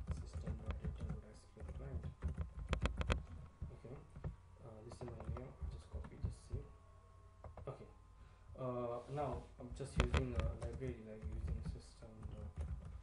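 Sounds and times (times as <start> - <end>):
typing on computer keyboard: 0.0 - 6.5, 10.0 - 13.0.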